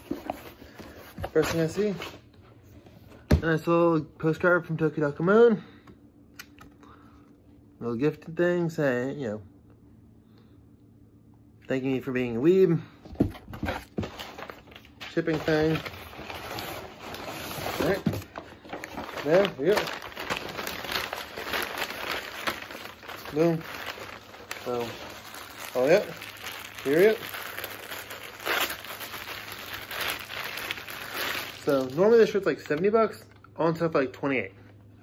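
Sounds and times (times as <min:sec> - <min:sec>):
plastic bag crinkling: 0:14.3 - 0:32.6.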